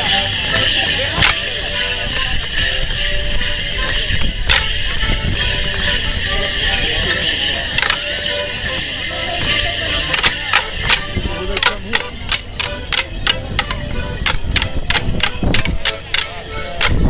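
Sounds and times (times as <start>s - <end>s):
accordion dance tune: 0.0s - 17.0s
leg bells jingling: 0.0s - 17.0s
wooden sticks clacking: 1.1s - 1.5s, 4.5s - 4.9s, 7.0s - 8.4s, 10.0s - 17.0s.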